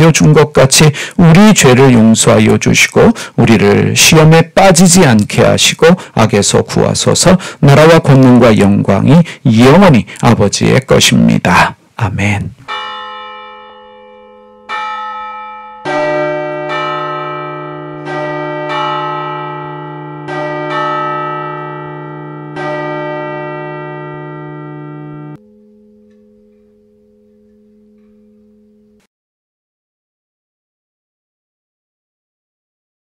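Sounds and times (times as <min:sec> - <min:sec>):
bells chiming a slow tune: 0:12.7 - 0:29.1.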